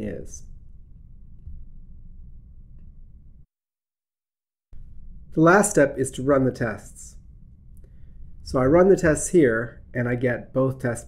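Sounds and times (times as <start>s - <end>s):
room tone hum: 0.0s - 3.5s, 4.8s - 11.0s.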